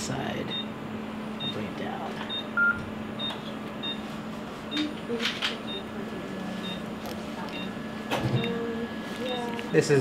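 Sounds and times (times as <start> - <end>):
steady low hum: 0.0 - 10.0
patient monitor beeping: 0.5 - 0.8, 1.4 - 10.0.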